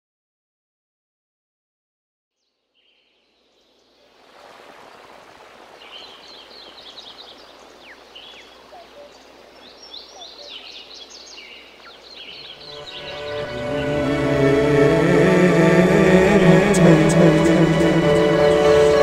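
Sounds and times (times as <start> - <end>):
crowd hum: 12.6 - 19.0.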